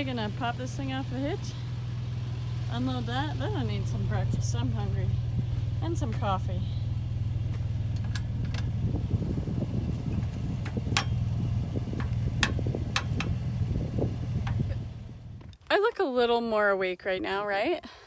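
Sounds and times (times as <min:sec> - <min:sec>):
truck engine idling: 0:00.0 - 0:15.6
metallic clicks and clanks: 0:12.0 - 0:13.4.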